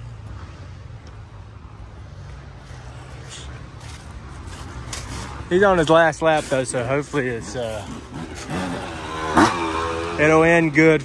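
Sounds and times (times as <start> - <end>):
distant dirt bike engines droning: 0.0 - 11.0
footsteps rustling through dry leaves: 2.8 - 6.7.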